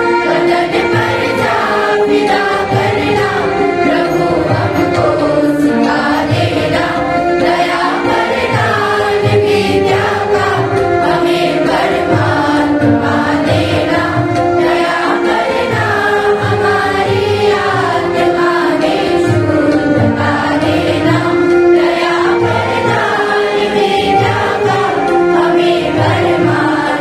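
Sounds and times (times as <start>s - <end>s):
children's choir singing: 0.0s - 27.0s.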